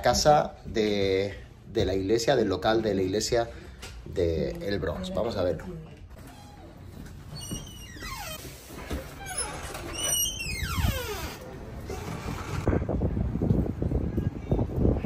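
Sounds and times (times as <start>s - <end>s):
door squeaking: 6.1s - 12.7s
wind on microphone: 10.4s - 15.0s.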